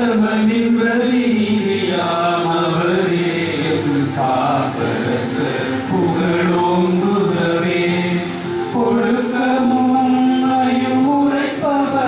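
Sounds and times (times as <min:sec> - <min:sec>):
men singing a hymn: 0:00.0 - 0:12.0.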